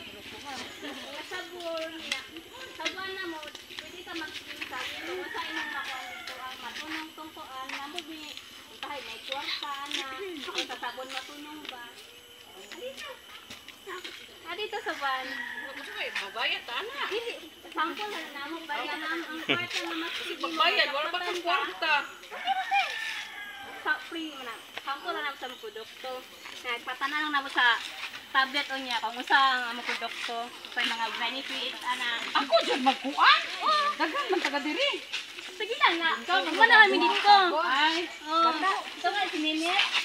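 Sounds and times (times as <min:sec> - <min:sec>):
people talking: 0:00.0 - 0:23.0, 0:23.8 - 0:40.0
children's voices: 0:30.8 - 0:40.0.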